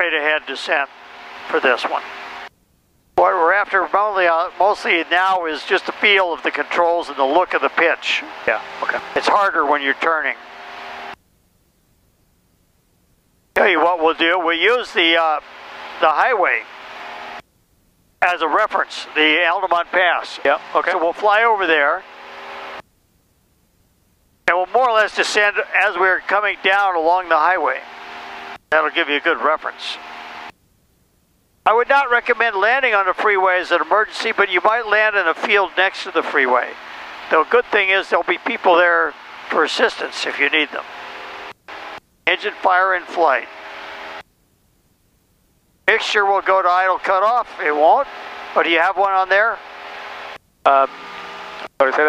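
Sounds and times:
person speaking: 3.2 - 10.4, 13.6 - 15.4, 18.2 - 22.0.

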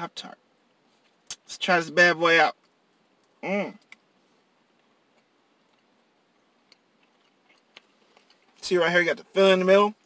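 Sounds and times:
person quietly chewing: 2.6 - 8.6.

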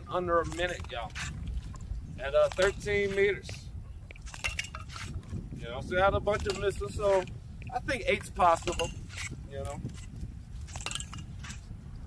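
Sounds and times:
tin cans clinking: 8.5 - 9.3.

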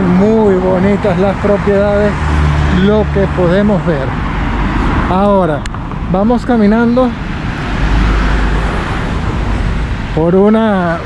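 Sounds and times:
cars passing on road: 0.0 - 11.0.

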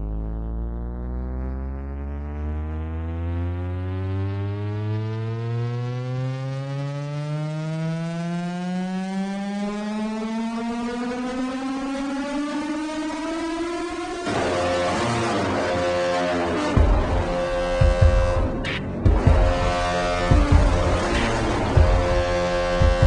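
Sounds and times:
rising synthesizer drone: 0.0 - 23.0.

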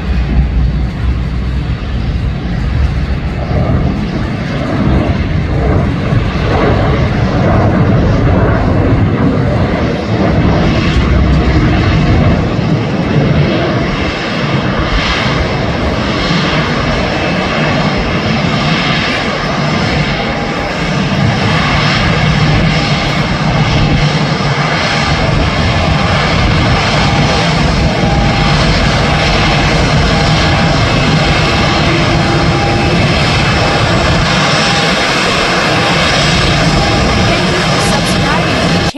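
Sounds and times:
faint high engine whine: 0.0 - 38.9
jet engines rumbling: 0.0 - 38.9.

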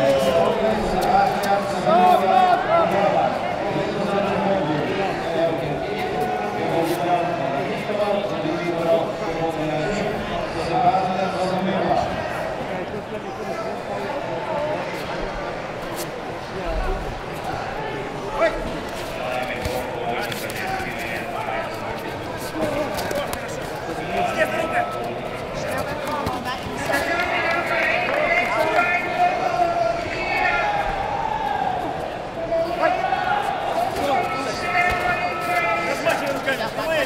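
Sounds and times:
voices shouting: 26.7 - 37.0.

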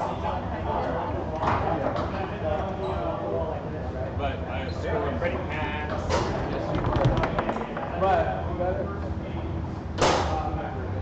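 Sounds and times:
foosball ball and rods clacking: 5.9 - 8.7.

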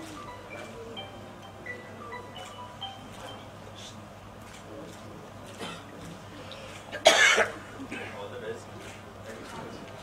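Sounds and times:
person coughing: 7.0 - 8.2.

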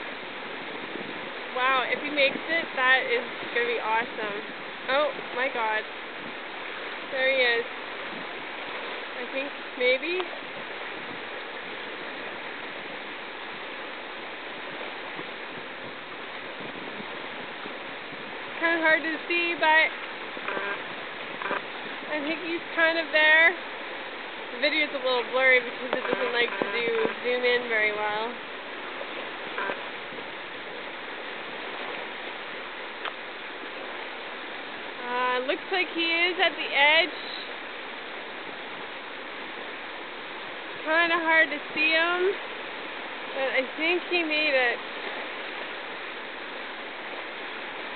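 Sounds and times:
whitewater river rushing: 0.0 - 47.9.

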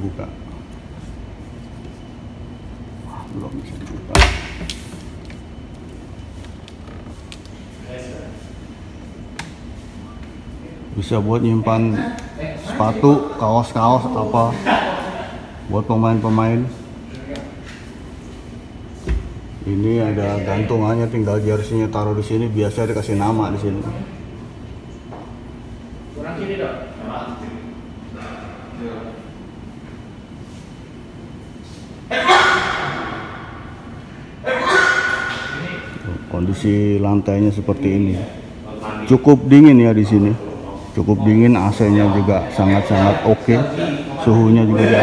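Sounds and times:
air conditioning rumble: 0.0 - 45.0
room hum: 0.0 - 45.0.

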